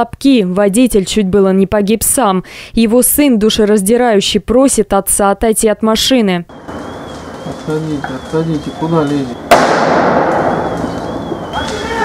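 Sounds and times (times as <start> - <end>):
bang from fire: 6.5 - 8.2, 9.4 - 12.0
wavering alarm tone: 6.5 - 9.5, 10.4 - 12.0
fire rushing rumble: 6.5 - 12.0
person shouting: 11.6 - 12.0.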